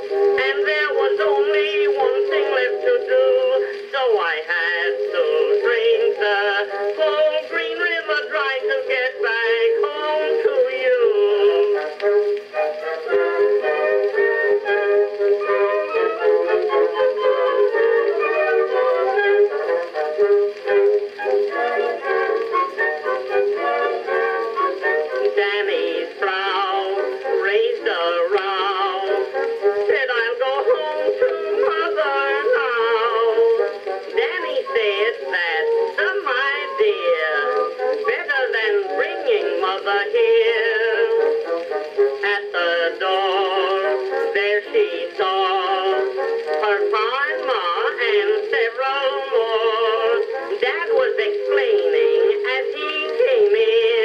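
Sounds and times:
song on cylinder phonograph: 0.0s - 54.0s.

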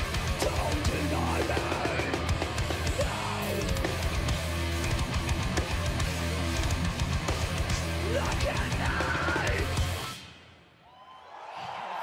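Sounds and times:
bass guitar: 0.0s - 10.2s
distorted electric guitar: 0.0s - 10.5s
drum kit: 0.0s - 10.5s.

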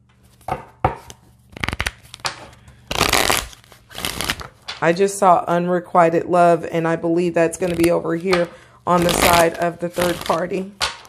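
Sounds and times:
cards being shuffled: 0.1s - 4.8s, 7.6s - 11.0s.

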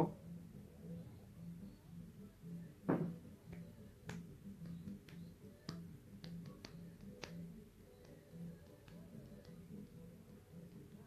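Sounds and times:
faint clicks and taps: 2.9s - 11.0s.

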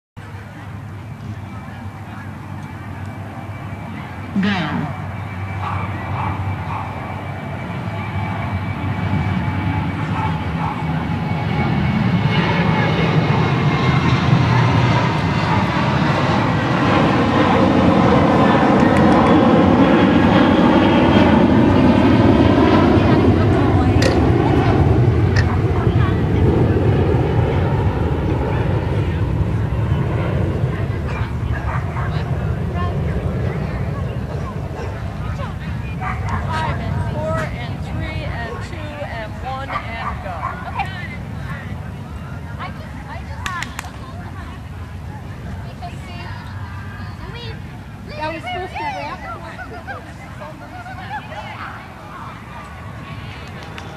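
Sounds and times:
aircraft flying over: 0.2s - 53.9s.

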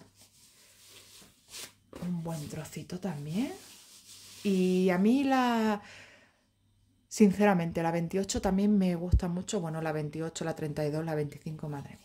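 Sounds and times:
cloth rustling: 0.0s - 5.0s.

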